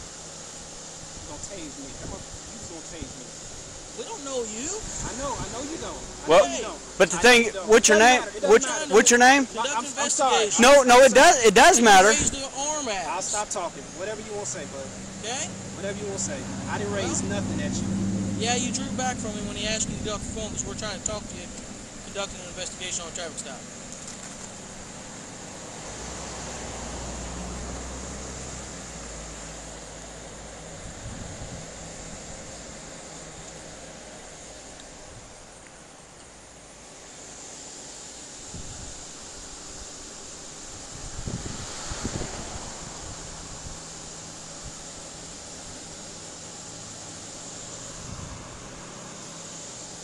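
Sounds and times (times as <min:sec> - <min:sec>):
steady background hiss: 0:00.0 - 0:50.0
low vehicle engine rumble: 0:12.2 - 0:37.0, 0:39.8 - 0:50.0.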